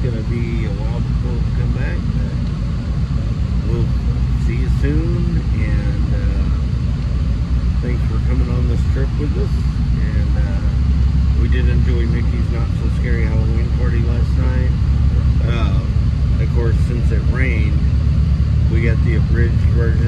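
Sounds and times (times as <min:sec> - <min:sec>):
bus engine and tyres rumbling: 0:00.0 - 0:20.0.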